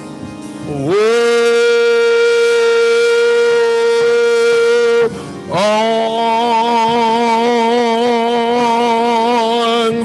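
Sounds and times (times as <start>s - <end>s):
man singing gospel song: 0.6s - 10.0s.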